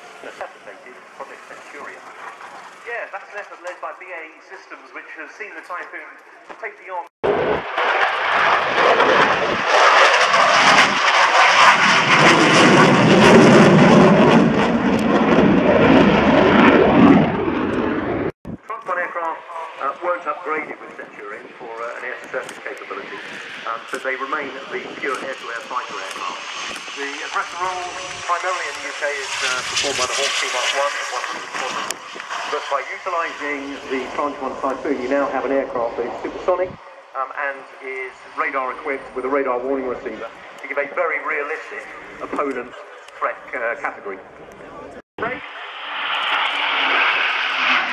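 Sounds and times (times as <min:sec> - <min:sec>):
military jet passing overhead: 0:00.0 - 0:05.0, 0:07.2 - 0:18.4, 0:19.0 - 0:44.6, 0:45.2 - 0:47.9
jet engine noise: 0:00.0 - 0:47.9.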